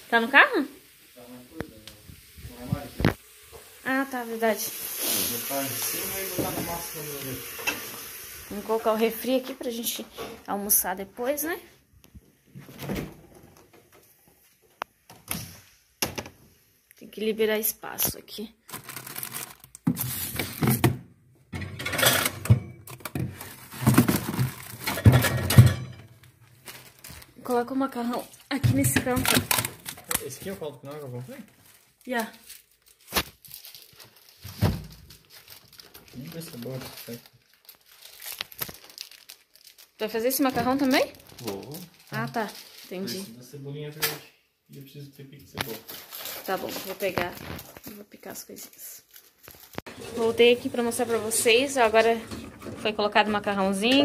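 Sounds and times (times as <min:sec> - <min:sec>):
meat sizzling in a pan: 0:00.0 - 0:09.5
plastic crinkling: 0:18.6 - 0:20.7, 0:22.9 - 0:25.0, 0:26.3 - 0:43.4, 0:45.6 - 0:51.9.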